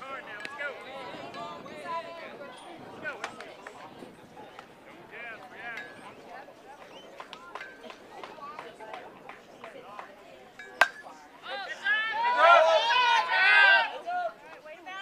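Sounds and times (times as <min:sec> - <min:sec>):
voices calling across a field: 0:00.0 - 0:15.0
baseball bat hitting ball: 0:10.6 - 0:11.2.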